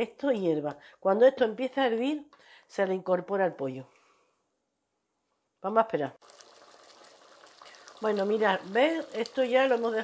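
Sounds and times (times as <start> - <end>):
pot bubbling at gentle boil: 6.2 - 10.0.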